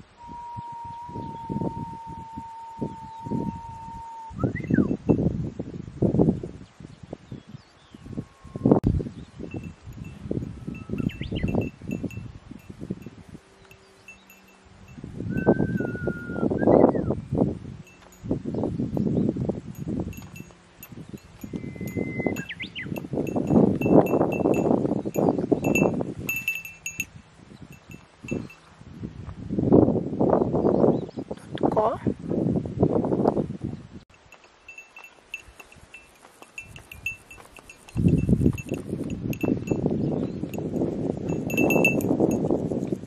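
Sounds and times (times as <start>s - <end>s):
wind gusting over microphone: 0.0s - 34.1s, 34.7s - 43.0s
short whistled calls: 0.2s - 5.0s, 10.6s - 12.1s, 15.3s - 17.2s, 21.4s - 23.4s
high tinkling ticks: 9.4s - 16.1s, 17.8s - 28.7s, 34.1s - 43.0s.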